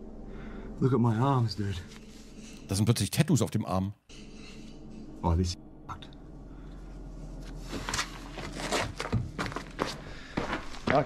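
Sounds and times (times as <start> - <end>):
backpack gear rustling: 7.5 - 10.1
footsteps scuffing: 7.7 - 11.0.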